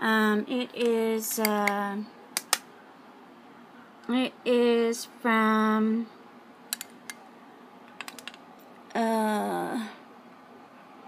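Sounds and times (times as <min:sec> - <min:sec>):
faint room hiss: 0:00.0 - 0:11.0
plastic cases clicking: 0:07.9 - 0:08.4.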